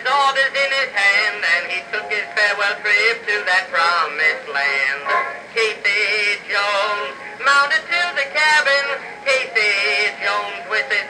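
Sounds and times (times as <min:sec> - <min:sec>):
phonograph recording of man singing: 0:00.0 - 0:11.0.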